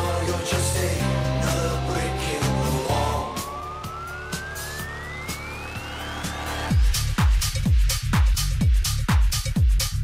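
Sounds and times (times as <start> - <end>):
rising synth sweep: 0.0 - 7.2
bass: 0.0 - 10.0
sparse dance beat: 1.3 - 10.0.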